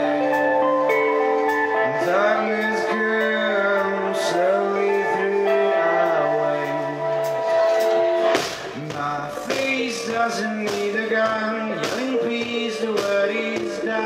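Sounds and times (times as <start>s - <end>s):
sustained electric guitar notes: 0.0s - 14.0s.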